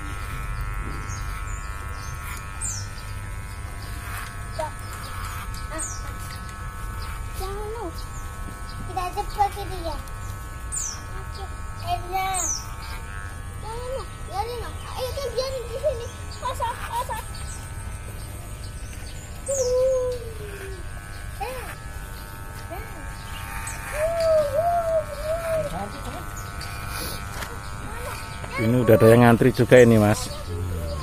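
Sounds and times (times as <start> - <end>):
electric hair clippers buzzing: 0.0 - 31.0.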